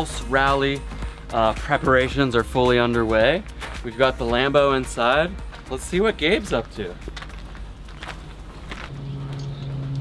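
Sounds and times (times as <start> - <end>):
footsteps on concrete floor: 0.5 - 10.0.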